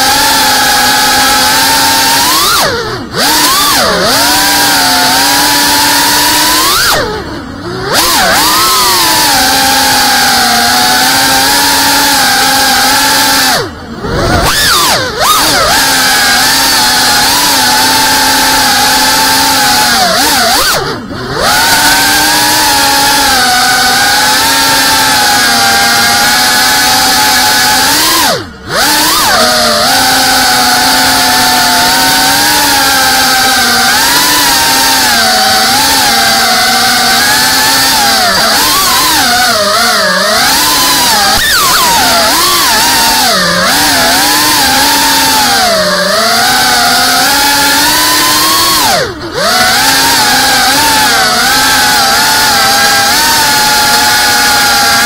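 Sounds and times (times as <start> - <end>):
drone motors whining: 0.0 - 55.0.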